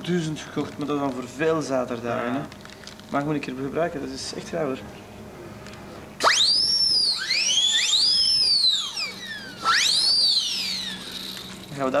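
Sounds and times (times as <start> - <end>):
plastic whistle warbling: 6.2 - 11.7.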